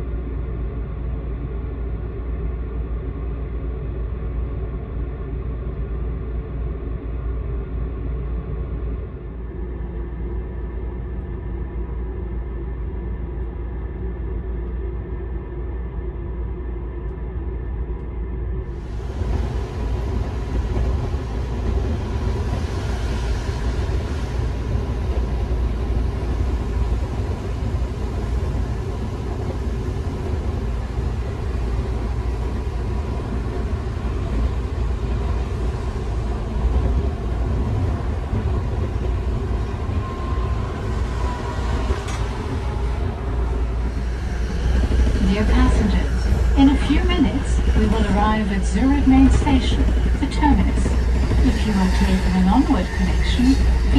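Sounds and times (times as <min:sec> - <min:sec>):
train rumble: 0:00.0 - 0:53.9.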